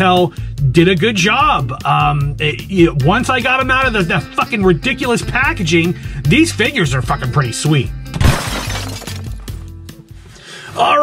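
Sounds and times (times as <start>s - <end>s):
background music with bass line: 0.0s - 11.0s
glass shattering crash: 8.1s - 9.6s.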